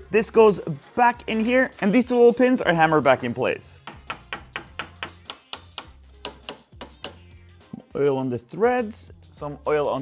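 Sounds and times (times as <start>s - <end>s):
hammer tapping metal pin: 3.8s - 7.2s.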